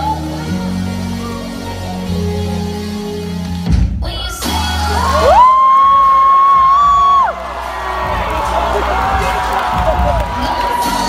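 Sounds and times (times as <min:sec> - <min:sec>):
dance music: 0:00.0 - 0:11.0.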